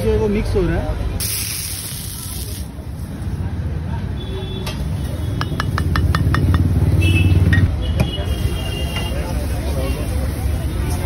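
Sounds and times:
water hissing on hot griddle: 0:01.2 - 0:02.8.

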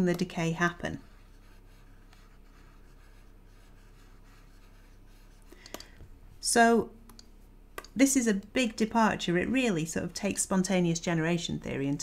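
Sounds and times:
stylus scratching on tablet: 0:00.0 - 0:05.6
low electrical hum: 0:00.0 - 0:12.0.

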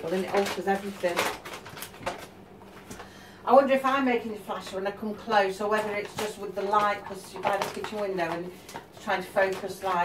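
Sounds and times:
paper bag rustling and crinkling: 0:00.0 - 0:03.2, 0:05.6 - 0:10.0.

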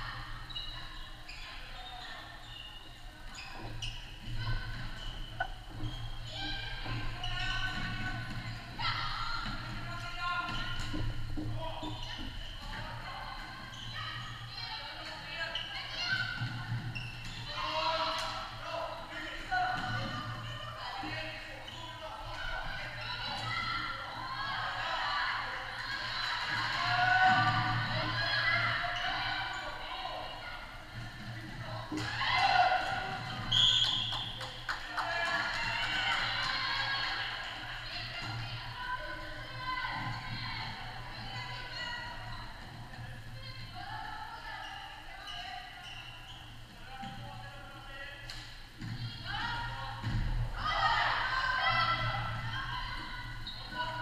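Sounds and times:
shoes squeaking on court floor: 0:00.3 - 0:18.7, 0:19.3 - 0:24.1, 0:32.7 - 0:34.7, 0:44.6 - 0:47.2, 0:52.0 - 0:54.0.

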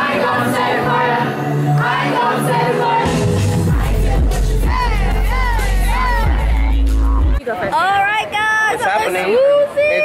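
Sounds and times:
sung vocal: 0:00.0 - 0:07.3
live pop music through pa: 0:00.0 - 0:07.4
crowd noise: 0:00.0 - 0:10.0
heavy bass line: 0:02.6 - 0:07.4.

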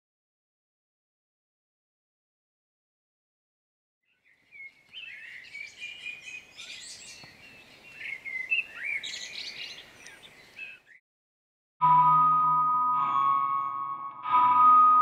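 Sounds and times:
birds chirping and whistling: 0:04.1 - 0:11.0.

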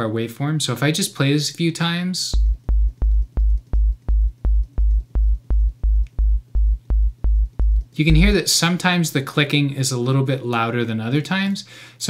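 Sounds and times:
low synthesizer stabs: 0:02.4 - 0:08.4.

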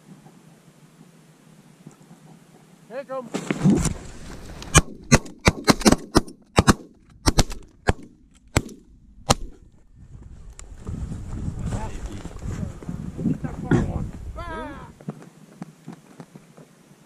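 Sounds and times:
rustling noise: 0:02.0 - 0:05.1, 0:09.4 - 0:16.8
shotgun fire: 0:04.7 - 0:09.6.

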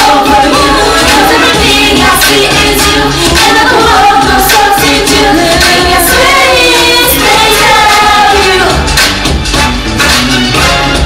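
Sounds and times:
female vocals: 0:00.0 - 0:08.8
pop dance track beat: 0:00.0 - 0:11.0.

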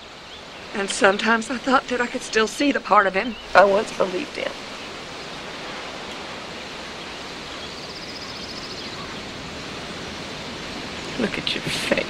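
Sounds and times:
outdoor background hiss: 0:00.0 - 0:12.0.

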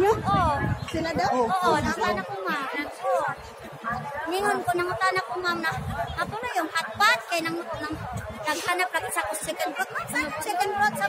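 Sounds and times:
women chattering: 0:00.0 - 0:11.0.

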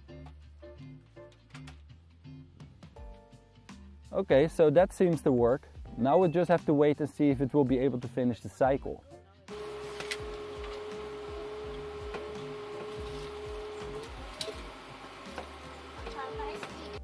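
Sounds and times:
washing machine motor whine: 0:09.5 - 0:17.0.

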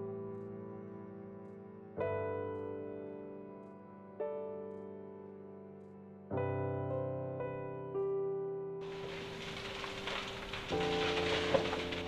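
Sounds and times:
large fire crackling with pops: 0:08.8 - 0:12.0.

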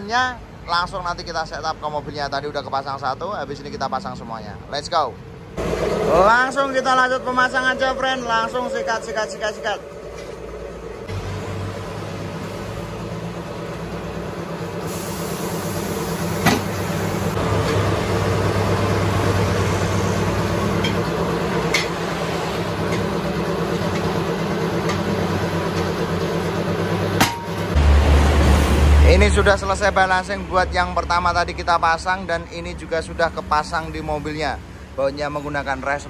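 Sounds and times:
tyre changer motor hum: 0:05.5 - 0:28.3.

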